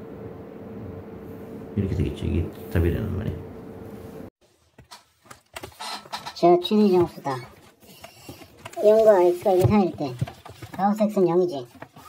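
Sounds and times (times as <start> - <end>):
faint hum: 0.0 - 4.3.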